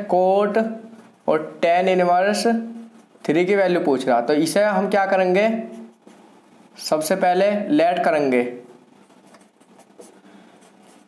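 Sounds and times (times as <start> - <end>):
marker scratching on whiteboard: 9.0 - 11.0.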